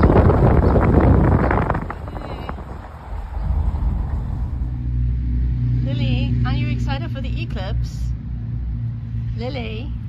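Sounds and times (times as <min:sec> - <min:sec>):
held low tones: 0:00.0 - 0:10.0
low motor hum: 0:00.0 - 0:10.0.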